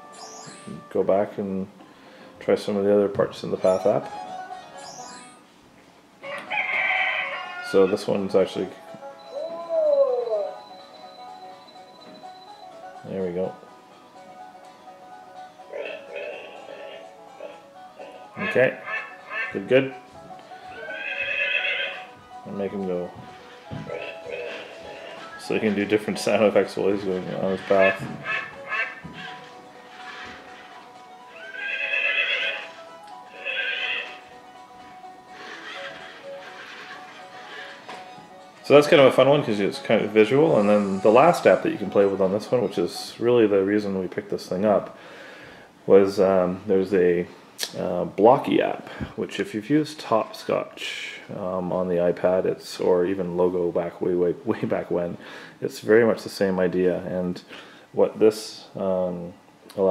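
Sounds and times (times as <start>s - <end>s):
faint background music: 0.0s - 59.9s
horse whinny from speaker: 6.4s - 8.0s, 20.8s - 22.1s, 31.3s - 32.7s, 33.3s - 34.2s, 35.3s - 37.9s
thin steady high tone: 9.2s - 12.7s.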